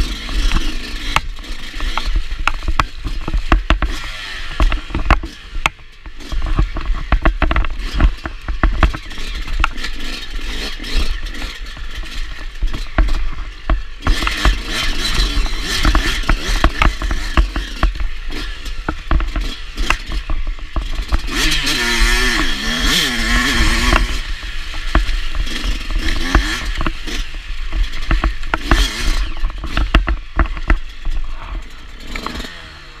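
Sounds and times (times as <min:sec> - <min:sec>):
dirt bike engine revving: 0:00.0 - 0:33.0
clattering and knocks from bumps: 0:04.6 - 0:32.5.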